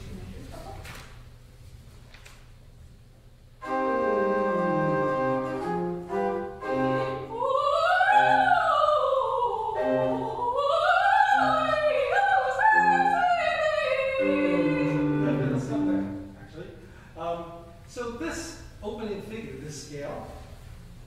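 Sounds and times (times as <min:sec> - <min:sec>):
keyboard chords: 0:03.6 - 0:07.5, 0:12.6 - 0:16.4
high female voice singing: 0:06.7 - 0:15.7.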